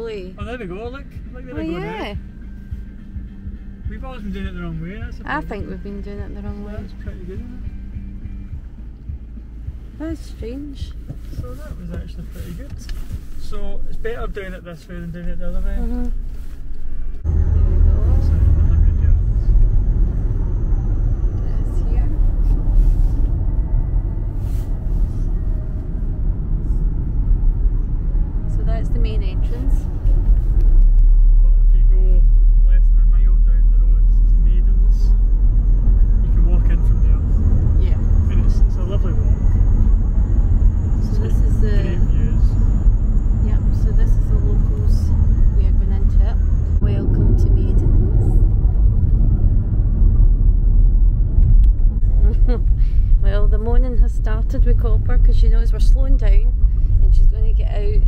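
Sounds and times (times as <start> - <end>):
car road noise rumble: 0.0 - 58.0.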